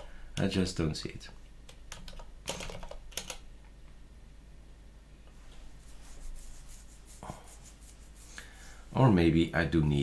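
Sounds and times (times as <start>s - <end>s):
computer keyboard keystrokes: 1.7s - 3.4s.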